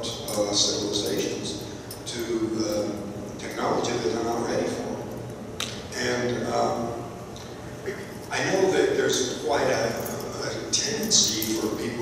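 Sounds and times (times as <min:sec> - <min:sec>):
man speaking into microphone: 0:00.0 - 0:05.1, 0:05.9 - 0:07.1, 0:07.8 - 0:12.0.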